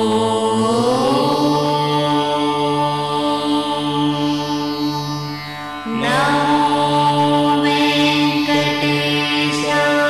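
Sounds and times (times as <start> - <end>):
chanted voice: 0.0 - 10.0
steady drone: 0.0 - 10.0.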